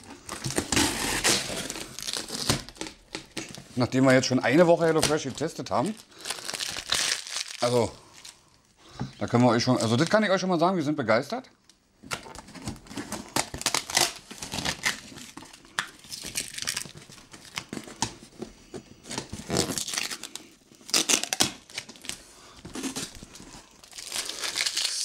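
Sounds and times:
packing tape tearing: 0:00.3 - 0:03.6, 0:12.1 - 0:18.2, 0:19.1 - 0:25.0.

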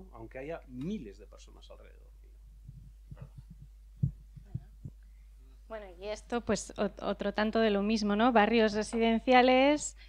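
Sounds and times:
sound system hum: 0:00.8 - 0:07.1
microphone handling thumps: 0:02.5 - 0:05.0
woman speaking into microphone: 0:05.7 - 0:10.0.

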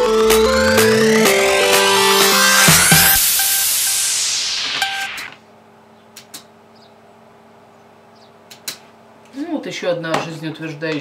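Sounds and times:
music: 0:00.0 - 0:05.4.

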